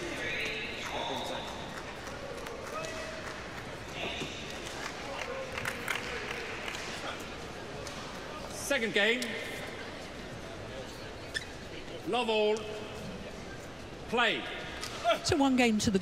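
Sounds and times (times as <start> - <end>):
arena hall background: 0.0 - 16.0
high shoe squeaks: 11.2 - 12.0.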